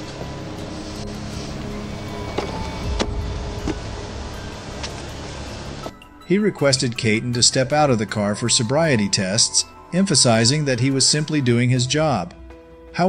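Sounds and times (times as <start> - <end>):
car engine idling: 0.0 - 5.9
roadside noise: 0.0 - 6.0
quiet background music: 0.0 - 13.0.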